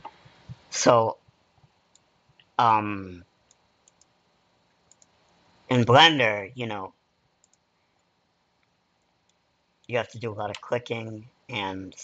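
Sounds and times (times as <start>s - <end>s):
faint computer mouse clicks: 3.5s - 4.2s, 4.8s - 5.5s, 7.4s - 9.4s.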